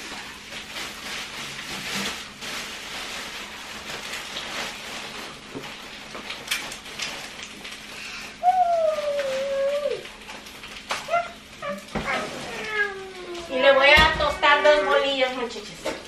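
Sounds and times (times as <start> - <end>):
plastic bags rustling: 0.0 - 16.0
woman calling out: 13.2 - 15.5.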